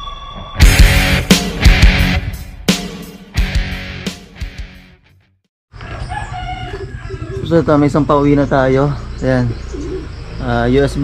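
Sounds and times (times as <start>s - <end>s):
intro music: 0.6s - 5.1s
outdoor ambience: 5.7s - 11.0s
rooster crowing: 5.8s - 7.5s.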